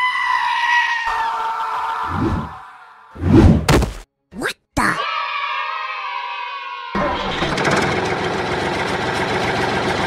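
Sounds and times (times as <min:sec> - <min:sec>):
tractor engine running: 0:07.0 - 0:10.0.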